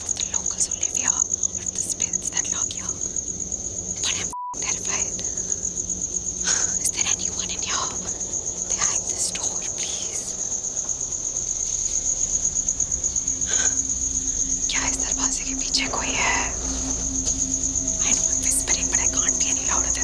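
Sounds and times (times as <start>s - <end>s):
soft whispers: 0.0s - 3.2s, 4.0s - 5.6s, 6.4s - 10.4s, 13.4s - 14.0s, 14.6s - 20.0s
crickets trilling: 0.0s - 20.0s.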